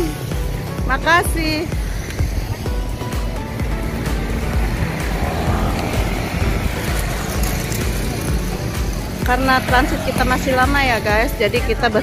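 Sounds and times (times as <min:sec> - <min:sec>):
music playing: 0:00.0 - 0:12.0
vehicle passing loudly: 0:00.0 - 0:12.0
vehicles driving by: 0:00.0 - 0:12.0.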